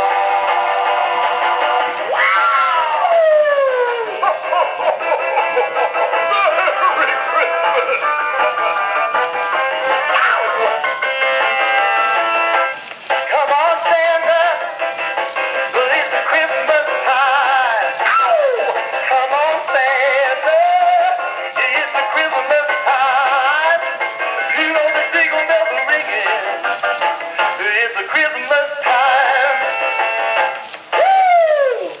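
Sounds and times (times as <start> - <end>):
synthetic male voice singing song: 13.3 - 14.7, 15.7 - 23.9, 24.5 - 26.6, 27.6 - 29.7.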